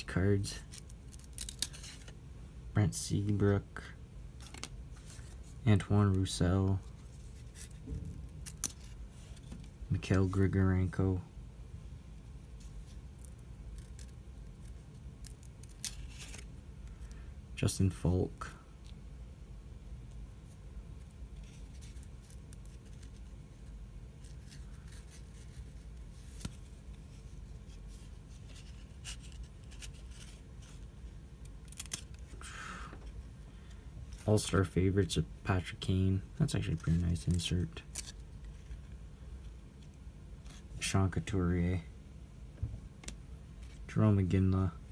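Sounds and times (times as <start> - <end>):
trading cards handled: 0.0 - 2.2, 4.4 - 10.5, 12.4 - 17.2, 21.0 - 34.8, 36.5 - 39.0
card stock snapping: 31.6 - 32.2.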